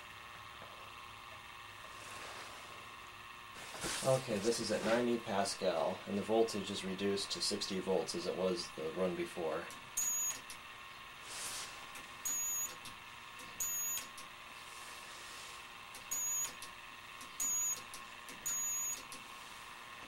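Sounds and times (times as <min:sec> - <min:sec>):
faint steady whine: 0:00.0 - 0:20.0
high-pitched beeps: 0:10.0 - 0:10.4, 0:12.2 - 0:12.8, 0:13.6 - 0:14.1, 0:16.1 - 0:16.6, 0:17.4 - 0:17.8, 0:18.4 - 0:19.0.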